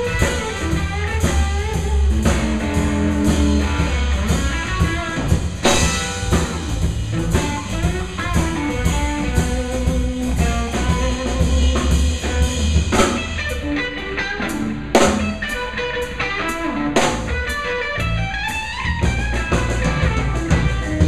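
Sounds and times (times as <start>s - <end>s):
bass guitar: 0.0s - 21.0s
drum kit: 0.0s - 21.0s
electric guitar lead: 0.0s - 21.0s
cymbal crashes: 5.5s - 8.9s.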